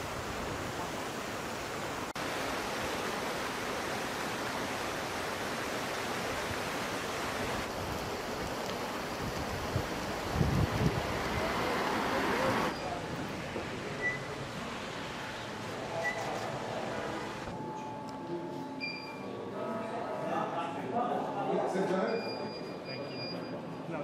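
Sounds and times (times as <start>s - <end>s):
wind on microphone: 9.2s - 11.7s.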